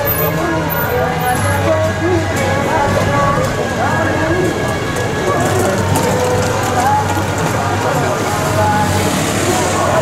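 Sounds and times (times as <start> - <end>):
low vehicle hum: 0.0 - 10.0
voices: 0.0 - 10.0.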